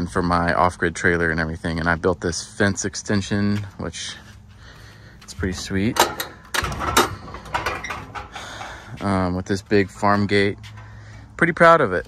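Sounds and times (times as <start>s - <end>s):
wooden gate latch clicking: 5.9s - 8.5s.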